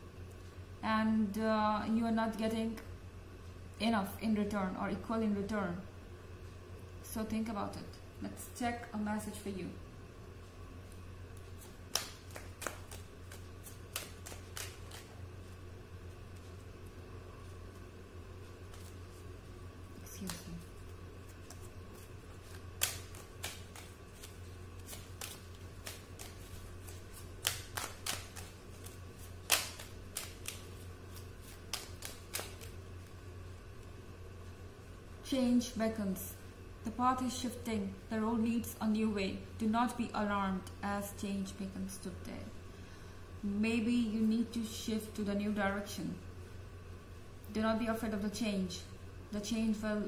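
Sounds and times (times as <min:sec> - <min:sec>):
steady low hum: 0:00.0 - 0:50.0
cards being shuffled: 0:10.8 - 0:33.2.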